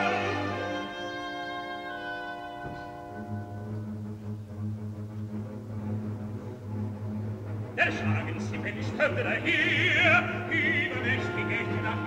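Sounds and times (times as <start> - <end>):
person singing: 0.0 - 1.4, 7.8 - 12.0
orchestra playing slow passage: 0.0 - 8.7.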